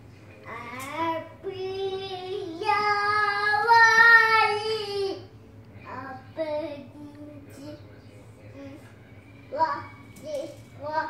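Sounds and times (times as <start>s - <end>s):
toddler girl singing: 0.5s - 5.3s, 9.5s - 11.0s.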